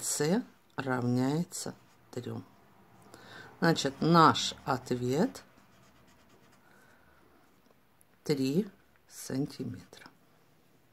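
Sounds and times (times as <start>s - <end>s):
marker writing on whiteboard: 5.4s - 6.6s.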